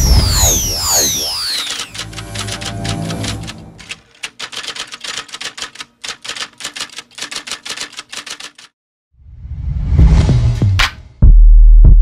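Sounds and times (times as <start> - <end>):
typewriter key clacks: 1.8 - 8.7
music: 9.4 - 12.0.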